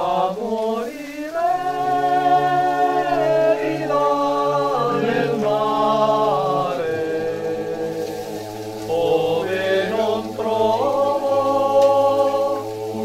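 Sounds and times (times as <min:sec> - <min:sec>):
choir singing in harmony: 0:00.0 - 0:13.0.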